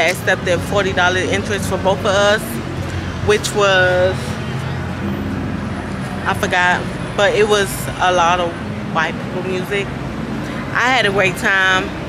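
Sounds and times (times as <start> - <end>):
street noise: 0.0 - 12.0
traffic hum: 0.0 - 12.0.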